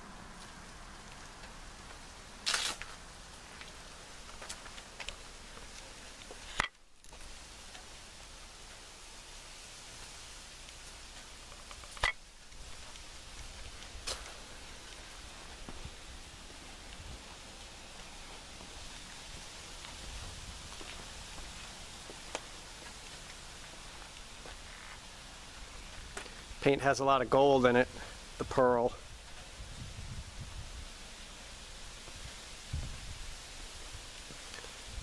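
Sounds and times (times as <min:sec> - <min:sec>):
background hiss: 0:00.0 - 0:35.0.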